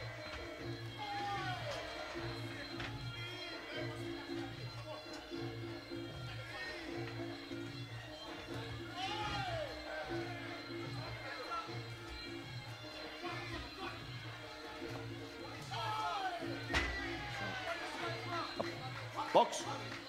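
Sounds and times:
voices shouting: 0:00.0 - 0:20.0.

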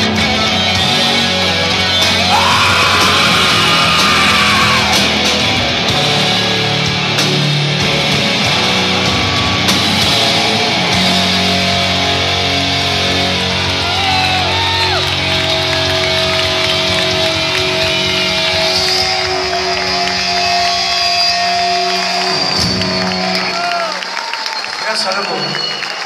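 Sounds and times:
rock band playing: 0:00.0 - 0:26.0
crowd cheering and whistling: 0:00.1 - 0:26.0.

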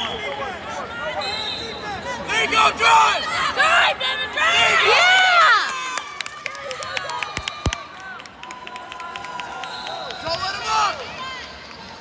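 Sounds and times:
crowd voices: 0:00.0 - 0:08.3
crowd cheer: 0:00.0 - 0:12.0.

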